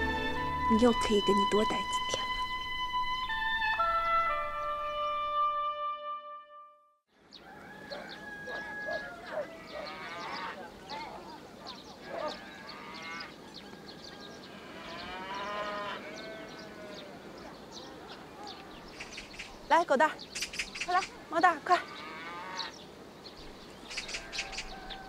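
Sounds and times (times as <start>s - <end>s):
music: 0.0s - 7.0s
distant calls of people: 7.2s - 25.0s
farm animals calling: 7.3s - 25.0s.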